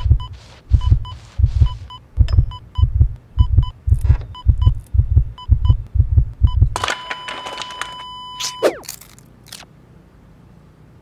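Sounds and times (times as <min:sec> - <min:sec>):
heartbeat double thumps: 0:00.0 - 0:06.8.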